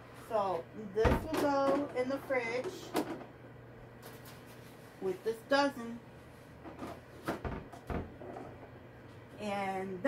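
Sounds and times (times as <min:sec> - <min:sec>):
microwave oven humming: 0:00.0 - 0:10.0.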